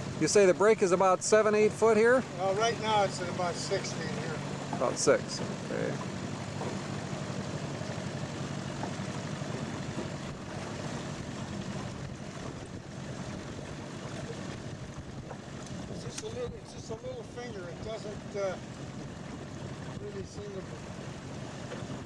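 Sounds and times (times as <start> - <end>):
outboard motor running: 0.0 - 22.0.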